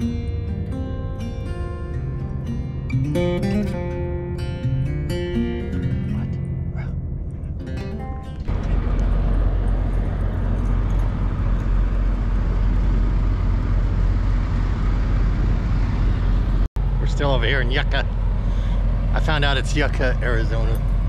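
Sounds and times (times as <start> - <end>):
acoustic guitar music: 0.0 - 11.9
truck engines idling: 0.0 - 21.0.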